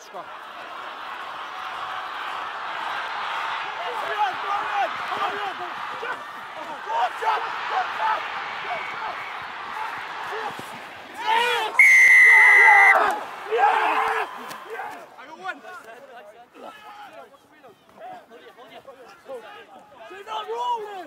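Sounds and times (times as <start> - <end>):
crowd and players shouting: 0.0 - 21.0
crowd noise: 0.0 - 21.0
referee's whistle blast: 11.8 - 13.0.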